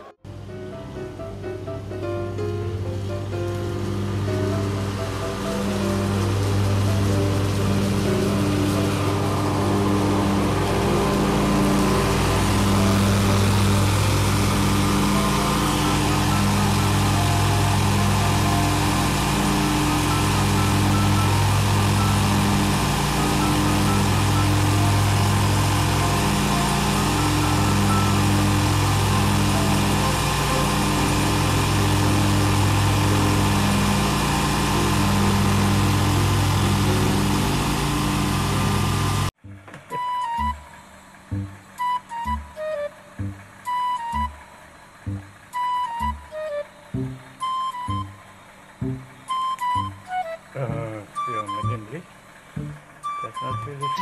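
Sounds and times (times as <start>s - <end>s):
riding lawn mower engine: 0.0s - 54.0s.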